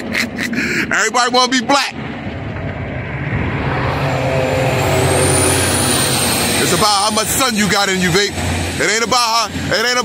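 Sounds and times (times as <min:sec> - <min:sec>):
passing vehicle engine and tyres: 0:01.8 - 0:10.0.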